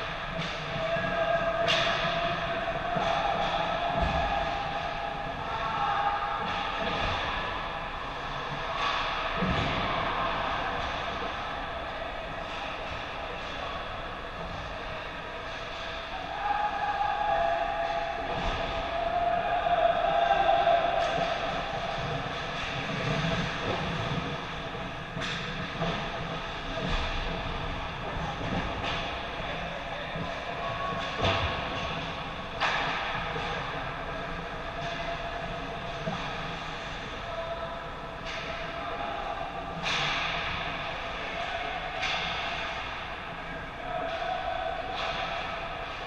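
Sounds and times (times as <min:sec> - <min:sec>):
steady background hum: 0:00.0 - 0:46.0.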